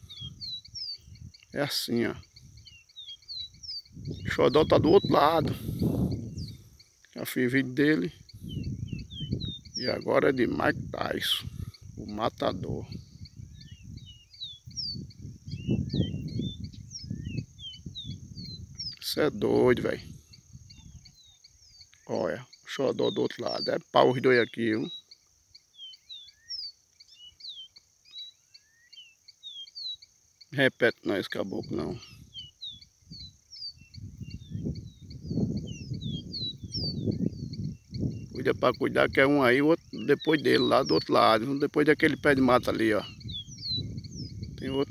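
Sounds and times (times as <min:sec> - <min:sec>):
wind rumbling on microphone: 0:00.0 - 0:21.9, 0:31.4 - 0:44.9
bird singing whistled notes: 0:00.0 - 0:44.9
high insect trill: 0:00.0 - 0:44.9.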